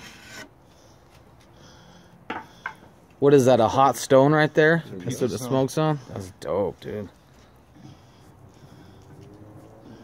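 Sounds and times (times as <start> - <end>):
wooden peel scraping pizza stone: 0.0 - 0.8.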